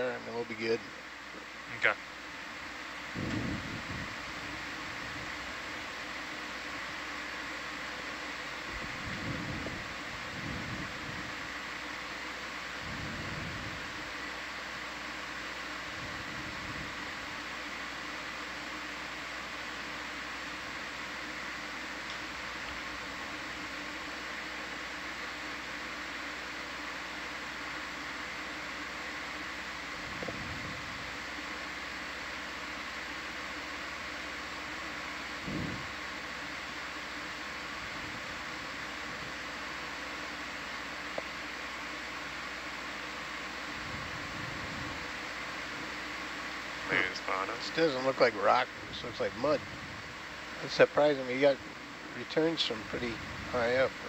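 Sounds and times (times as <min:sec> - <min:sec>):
faint high whine: 0:00.0 - 0:54.0
steady audio feed hiss: 0:00.0 - 0:54.0.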